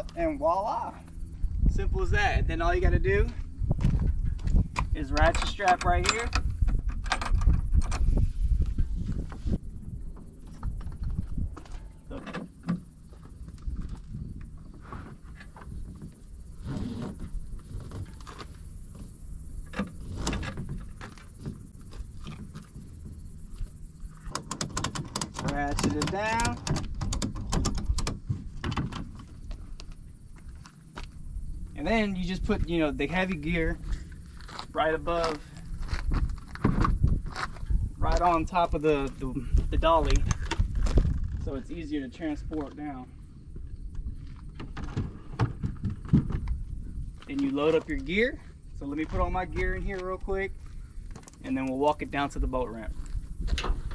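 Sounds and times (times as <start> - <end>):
steady low rumble: 0.0 - 53.9.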